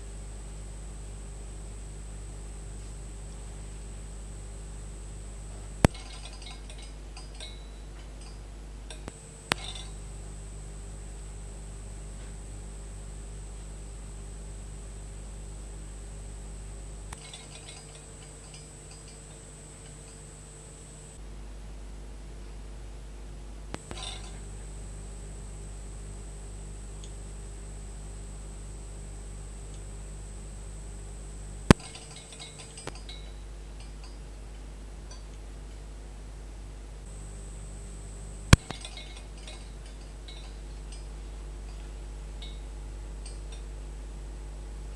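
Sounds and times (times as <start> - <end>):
display tube pings: 5.8 - 10.0
low hum: 8.9 - 21.2, 37.0 - 40.8
thin high whine: 8.9 - 21.2, 23.8 - 33.5, 37.1 - 41.0.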